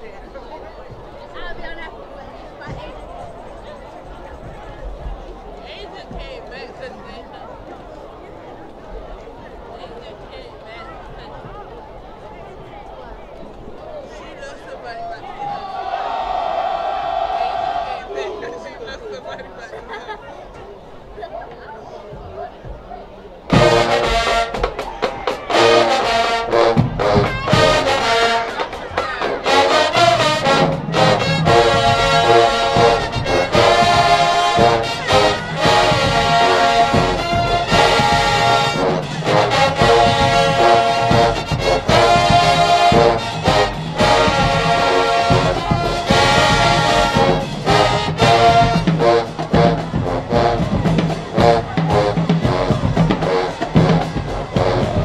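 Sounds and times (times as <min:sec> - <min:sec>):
brass chords: 0:23.5 - 0:55.0
marching drumline: 0:23.5 - 0:55.0.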